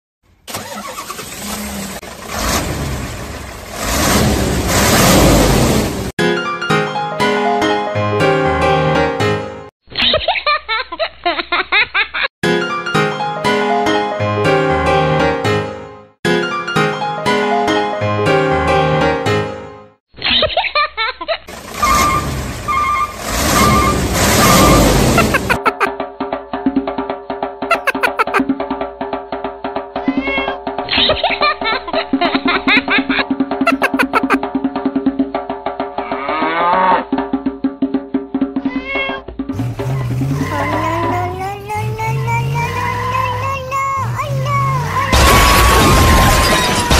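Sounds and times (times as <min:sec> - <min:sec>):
car engine starting and running: 0:00.3 - 0:06.2, 0:21.5 - 0:25.8, 0:39.4 - 0:46.2.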